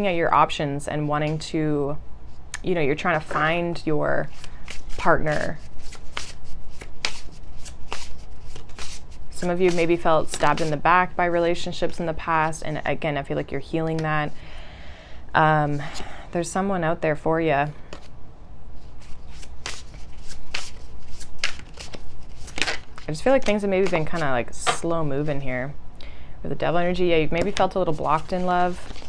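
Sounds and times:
cards being shuffled: 0:04.2 - 0:10.9, 0:17.9 - 0:18.1, 0:18.8 - 0:24.9, 0:27.4 - 0:29.0.

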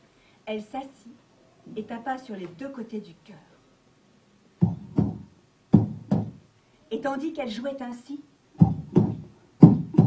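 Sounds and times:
person making heartbeat thumps: 0:04.6 - 0:06.4, 0:08.6 - 0:10.0.

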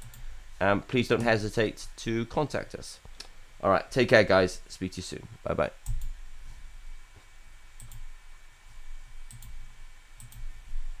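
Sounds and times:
computer mouse clicks: 0:00.0 - 0:00.2, 0:05.8 - 0:06.1, 0:07.8 - 0:08.1, 0:09.3 - 0:09.6, 0:10.2 - 0:10.5.

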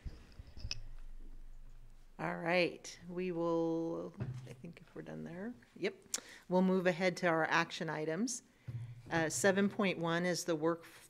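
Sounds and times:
low electrical hum: 0:00.0 - 0:10.3
microphone handling thump and clicks: 0:08.7 - 0:09.6.

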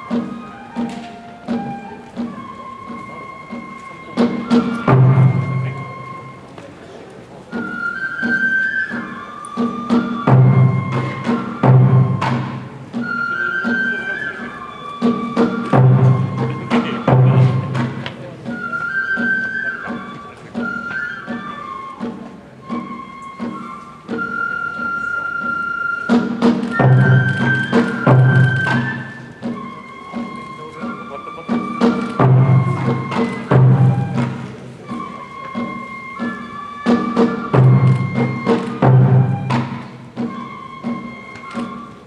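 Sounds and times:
bamboo flute melody: 0:00.0 - 0:42.0
heavy drum strokes: 0:00.0 - 0:42.0
sharp drum strikes: 0:04.2 - 0:05.8, 0:09.9 - 0:13.0, 0:15.1 - 0:18.2, 0:31.8 - 0:34.6.

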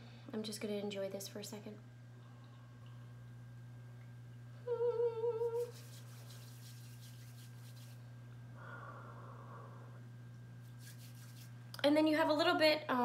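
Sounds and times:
woman humming: 0:04.6 - 0:05.8
faint breaths: 0:08.5 - 0:10.1.

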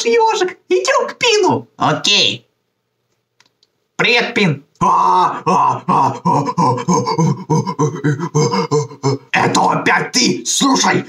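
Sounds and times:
cartoon man crying out in fright: 0:04.8 - 0:09.4.

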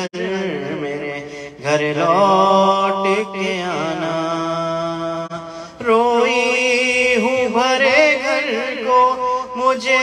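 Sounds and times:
man chanting a lament: 0:00.0 - 0:10.0.

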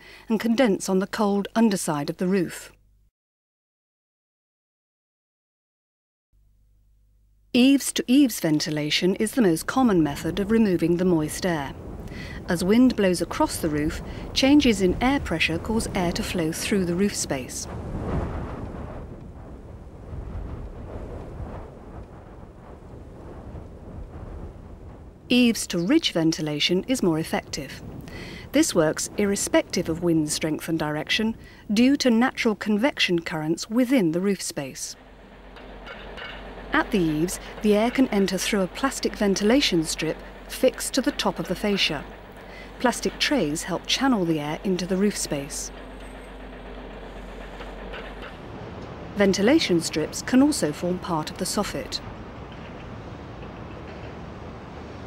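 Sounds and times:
low rumbling whoosh of wind: 0:09.4 - 0:32.6, 0:34.9 - 0:55.0.

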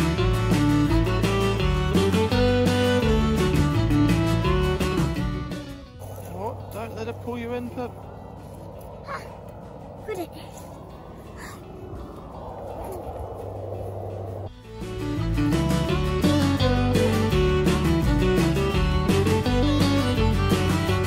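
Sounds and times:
steady rushing haze: 0:06.1 - 0:14.6.

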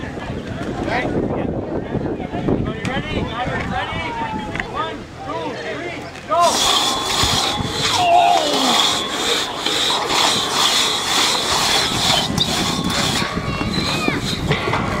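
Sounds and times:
onlookers calling out: 0:03.9 - 0:09.4
crosscut saw rasping through wood: 0:06.4 - 0:15.0.

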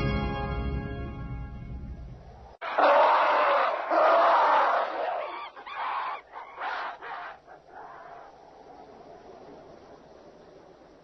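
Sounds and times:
ape shrieking: 0:02.6 - 0:08.3.

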